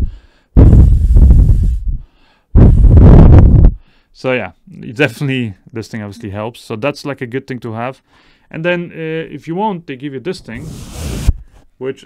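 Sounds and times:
breath wind noise on microphone: 0.0s - 4.1s, 10.6s - 11.7s.

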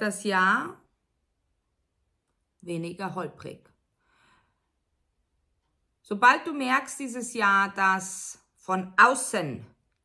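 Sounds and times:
faint short breath: 4.0s - 4.8s.

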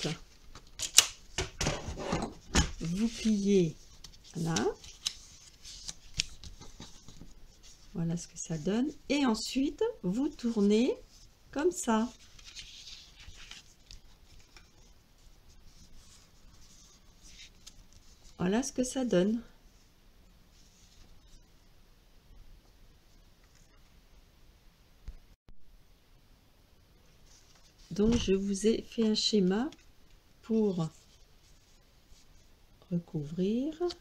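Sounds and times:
cardstock rustling: 1.9s - 8.6s.

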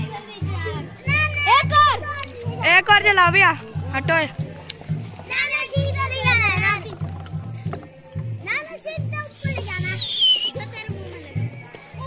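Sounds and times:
children calling and singing: 0.0s - 12.0s.

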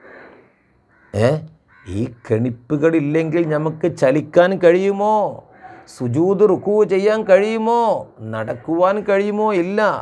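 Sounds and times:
man speaking: 1.2s - 10.0s.

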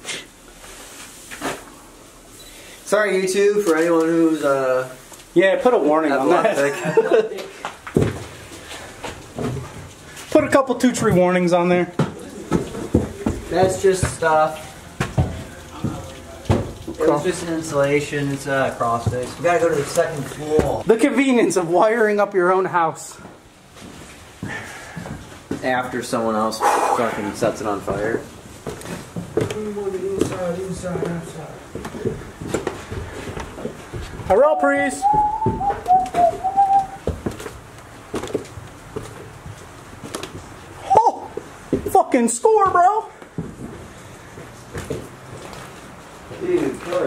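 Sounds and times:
footsteps on debris: 12.0s - 21.0s, 28.5s - 34.4s, 35.0s - 40.6s, 42.6s - 47.0s
person whistling: 35.0s - 37.0s.

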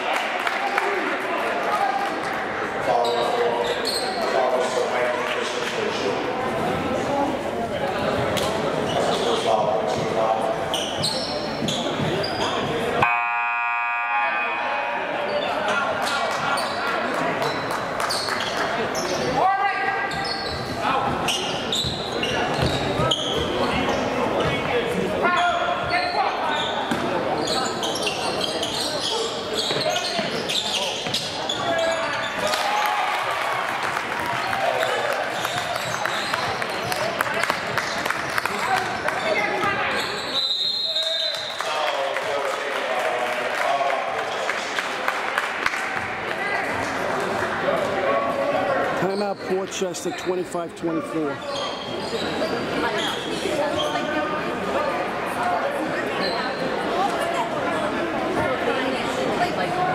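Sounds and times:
buzzer tone: 13.0s - 15.1s.

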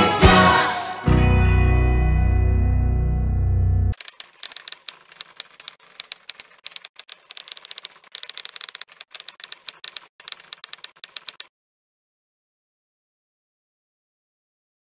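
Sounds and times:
typewriter keys clacking: 4.0s - 11.5s.

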